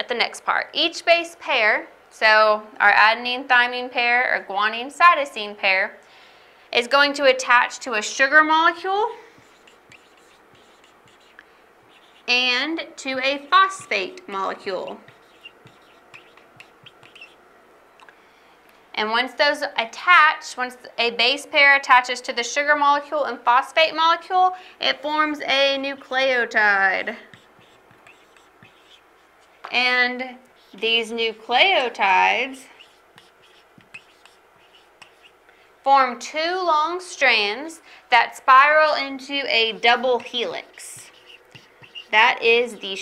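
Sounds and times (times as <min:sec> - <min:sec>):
woman speaking: 0:00.0 - 0:06.0, 0:06.8 - 0:09.2, 0:12.2 - 0:15.2, 0:19.0 - 0:27.3, 0:29.7 - 0:32.8, 0:35.9 - 0:41.2, 0:42.1 - 0:43.0
marker squeaking on whiteboard: 0:08.7 - 0:17.4, 0:27.0 - 0:35.4, 0:39.4 - 0:43.0.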